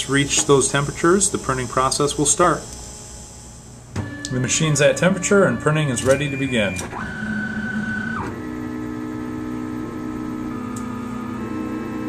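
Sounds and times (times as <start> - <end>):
stepper motors whining: 0.0 - 12.0.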